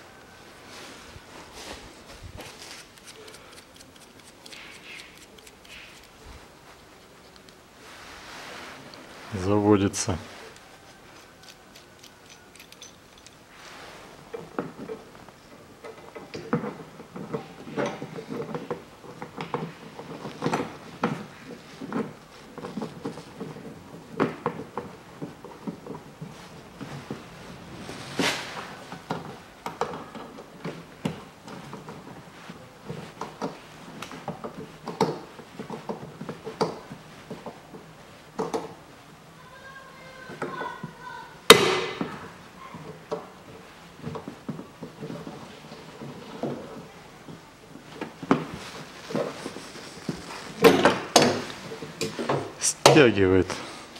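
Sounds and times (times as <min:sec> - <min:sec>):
loud sharp crack: 0:41.5 - 0:42.0.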